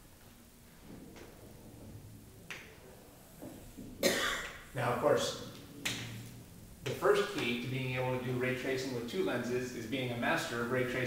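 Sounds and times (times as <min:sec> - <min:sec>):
man speaking: 0:04.7 - 0:05.6, 0:06.8 - 0:11.0.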